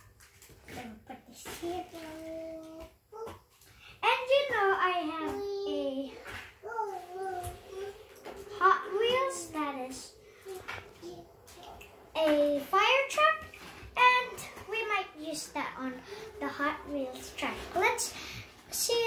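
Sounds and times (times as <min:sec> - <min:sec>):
child talking and babbling: 0:00.7 - 0:19.0.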